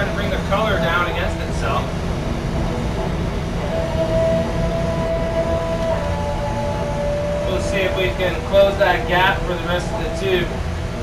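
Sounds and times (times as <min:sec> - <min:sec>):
exhaust fan: 0:00.0 - 0:11.0
torch flame rushing: 0:00.0 - 0:11.0
thin steady whistle: 0:02.6 - 0:11.0.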